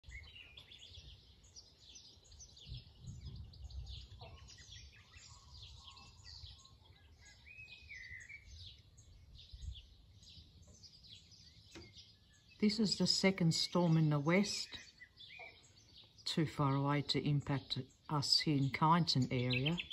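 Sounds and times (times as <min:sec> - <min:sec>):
birds chirping and calling: 0:00.0 - 0:19.9.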